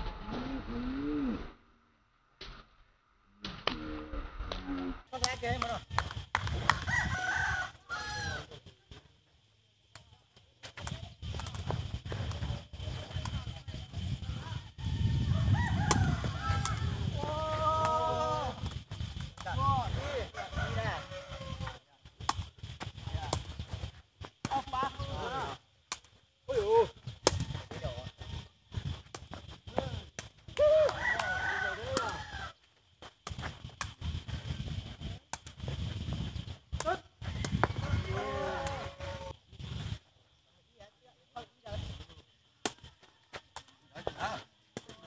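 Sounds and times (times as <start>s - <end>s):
wind rumble on microphone: 3.6s - 8.4s, 10.8s - 25.7s, 26.5s - 32.6s, 33.2s - 40.1s
rooster crowing: 6.7s - 8.5s, 14.6s - 18.6s, 20.0s - 21.8s, 30.6s - 32.6s, 37.2s - 39.4s.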